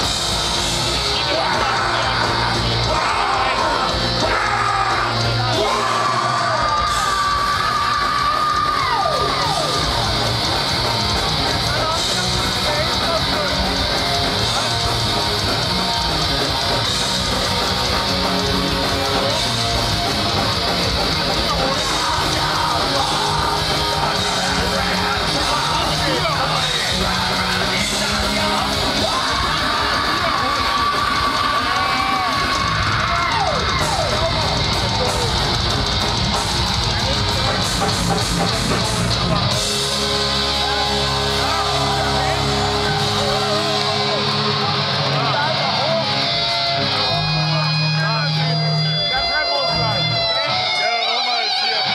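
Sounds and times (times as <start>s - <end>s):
black metal band playing live: 0.0s - 51.9s
crowd yelling: 0.0s - 51.9s
distorted guitar: 0.0s - 51.9s
drums: 0.0s - 51.9s.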